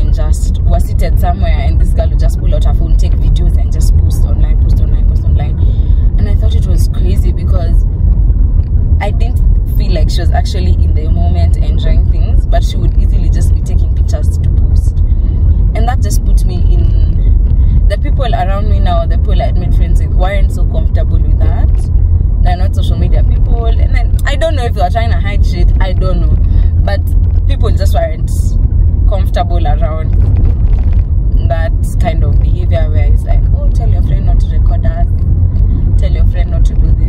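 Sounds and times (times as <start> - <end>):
woman talking: 0.0 - 7.8, 9.0 - 15.0, 15.7 - 30.2, 31.4 - 35.2, 36.0 - 37.0
car road and engine rumble: 0.0 - 37.0.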